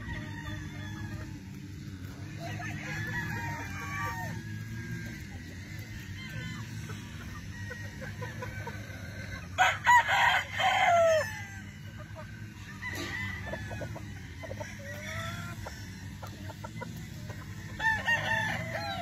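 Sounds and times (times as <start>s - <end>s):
hens clucking and chirping: 0.0s - 19.0s
rooster crowing: 0.0s - 19.0s.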